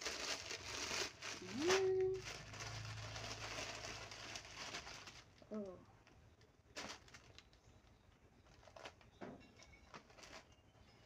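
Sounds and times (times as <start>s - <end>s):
plastic bag rustling: 0.0s - 7.6s, 8.4s - 10.9s.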